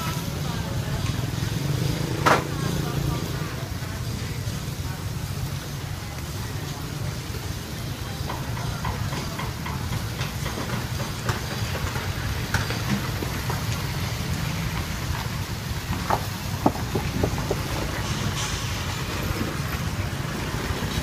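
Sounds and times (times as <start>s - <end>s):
food grilling hiss: 0.0s - 21.0s.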